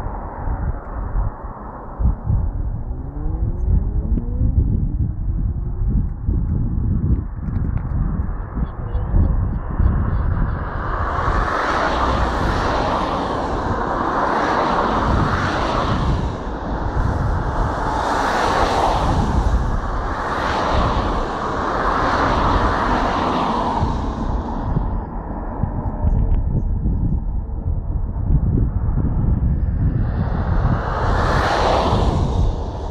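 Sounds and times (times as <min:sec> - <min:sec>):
wind on microphone: 0:00.0 - 0:32.9.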